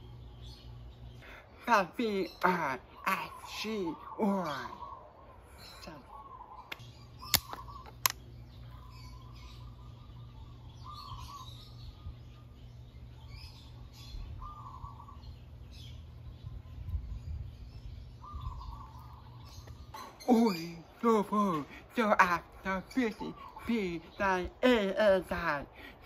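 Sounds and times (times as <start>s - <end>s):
birds calling: 0.0s - 26.0s
low steady hum: 0.0s - 26.0s.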